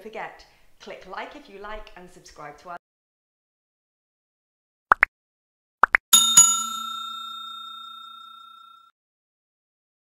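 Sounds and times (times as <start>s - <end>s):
bell-like chime ringing: 6.2s - 8.9s.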